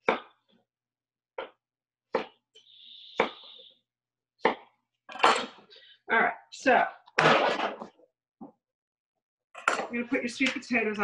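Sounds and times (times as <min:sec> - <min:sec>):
knife chopping on wooden board: 0:03.2 - 0:03.4, 0:04.4 - 0:04.8.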